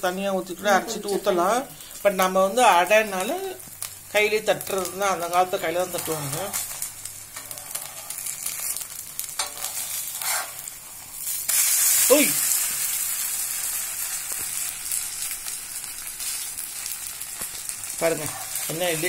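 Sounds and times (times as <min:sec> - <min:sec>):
batter sizzling in a pan: 0:00.0 - 0:19.0
steel spatula scraping a pan: 0:07.4 - 0:08.8, 0:09.4 - 0:10.7, 0:18.1 - 0:19.0.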